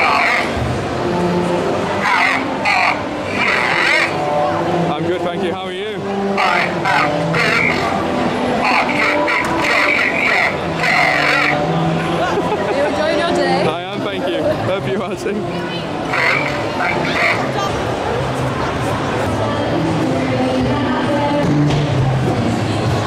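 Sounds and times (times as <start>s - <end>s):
crowd chatter: 0.0s - 23.0s
music playing: 0.0s - 23.0s.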